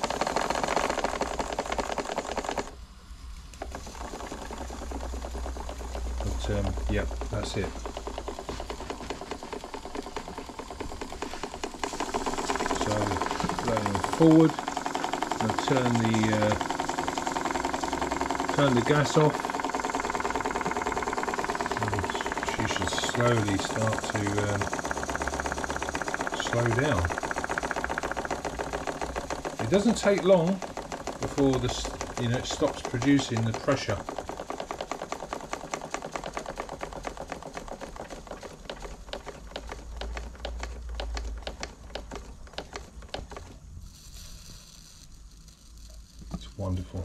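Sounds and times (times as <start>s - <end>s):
model steam engine running fast: 0.0s - 2.8s, 3.6s - 43.5s.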